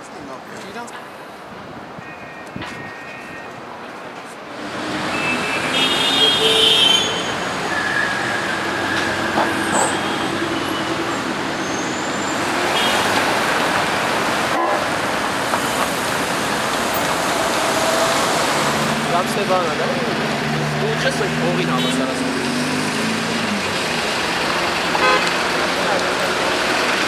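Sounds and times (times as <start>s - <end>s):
cars driving past: 4.4s - 27.0s
car horn toots: 5.2s - 7.4s, 12.8s - 13.1s, 14.5s - 14.9s, 21.6s - 22.2s, 25.0s - 25.4s.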